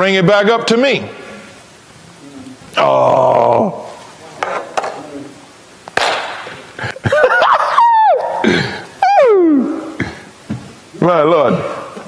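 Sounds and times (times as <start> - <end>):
breathy laugh: 6.8 - 7.8
voices crying ooh: 7.1 - 10.0.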